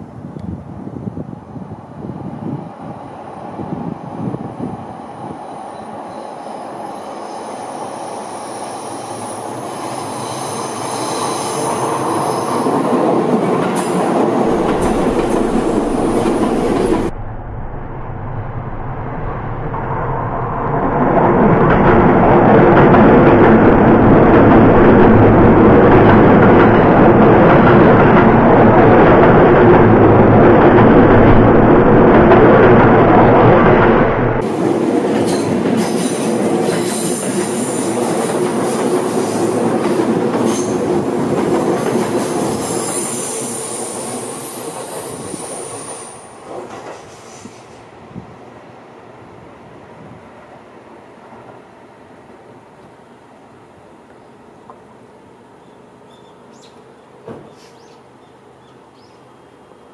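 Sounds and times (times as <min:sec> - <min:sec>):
electric train passing by: 0:00.0 - 0:59.9
train wheels squealing: 0:05.5 - 0:12.8, 0:35.2 - 0:38.0, 0:40.4 - 0:40.9, 0:42.2 - 0:47.9.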